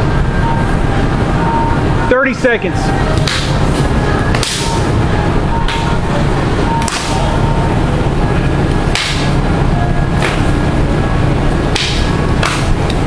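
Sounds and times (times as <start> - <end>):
low room rumble: 0.0 - 13.0
sparring sticks striking: 3.1 - 3.7, 4.3 - 4.9, 6.8 - 7.4, 8.8 - 9.4, 10.1 - 10.6, 11.6 - 13.0.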